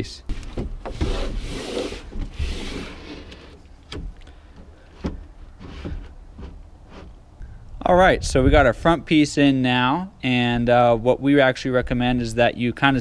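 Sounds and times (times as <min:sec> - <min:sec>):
floor panel scraping: 0:00.3 - 0:03.6.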